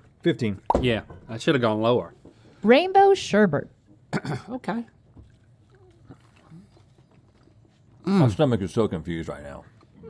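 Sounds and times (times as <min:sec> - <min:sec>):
wet clicks of chewing candy: 0:05.2 - 0:08.1.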